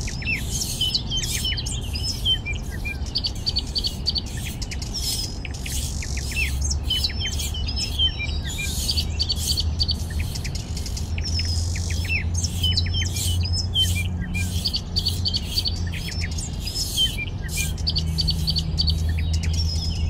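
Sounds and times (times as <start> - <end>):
small birds chirping: 0.0 - 20.0.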